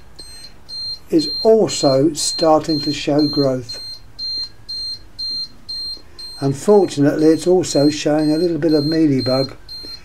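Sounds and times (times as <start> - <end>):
high-pitched electronic beeps: 0.0 - 10.0.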